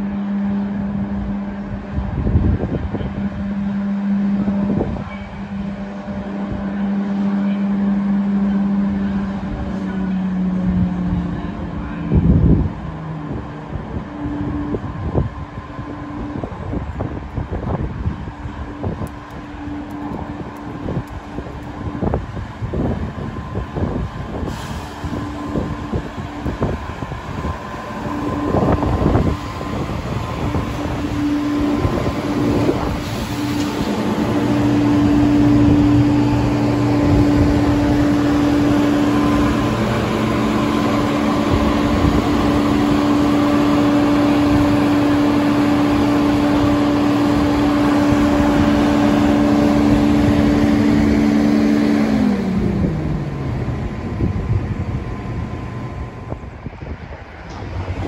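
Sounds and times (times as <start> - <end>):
train electrical hum: 0.0 - 58.0
train wheel and running noise: 0.0 - 58.0.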